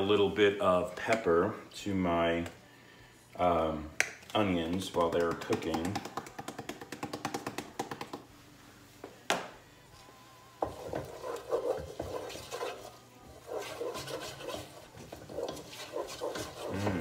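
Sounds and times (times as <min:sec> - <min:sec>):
utensil scraping saucepan: 0:10.7 - 0:17.0.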